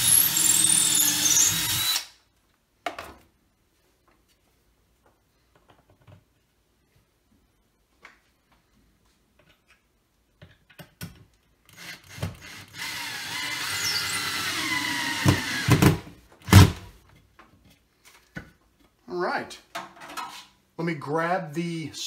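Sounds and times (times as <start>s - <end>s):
cordless drill boring: 0.0s - 2.2s, 11.8s - 15.9s.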